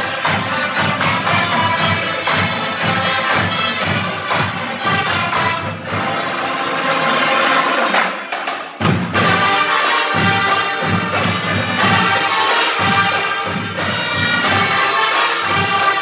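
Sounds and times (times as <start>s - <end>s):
marching band drums: 0.0s - 16.0s
marching band horns: 0.0s - 16.0s.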